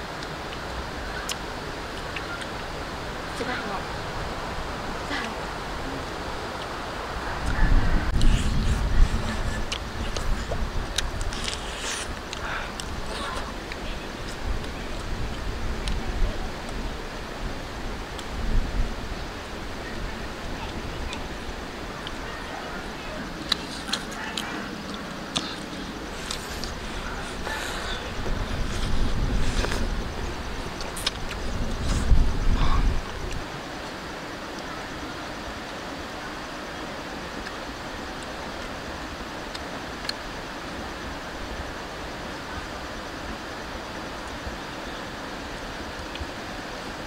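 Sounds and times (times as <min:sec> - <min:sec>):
steady hiss: 0:00.0 - 0:47.0
wind buffeting microphone: 0:00.8 - 0:33.8.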